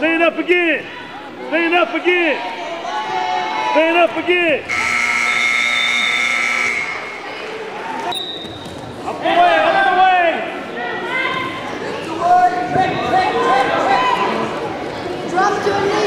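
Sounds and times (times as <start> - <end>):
people shouting in a gym: 0.6 - 8.2, 9.0 - 14.7
gym buzzer: 4.7 - 7.2
short high whistle: 4.7 - 7.2.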